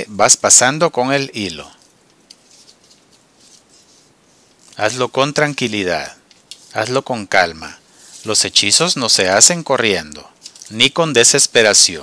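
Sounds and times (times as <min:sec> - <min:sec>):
paper rustling and crinkling: 0:01.7 - 0:07.0.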